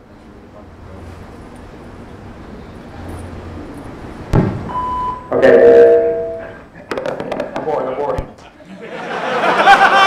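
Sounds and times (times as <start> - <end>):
voicemail beep: 4.7 - 6.4.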